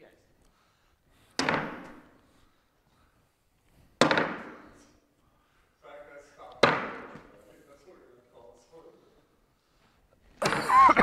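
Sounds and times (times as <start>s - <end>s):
bags thudding on wooden board: 4.0s - 4.6s.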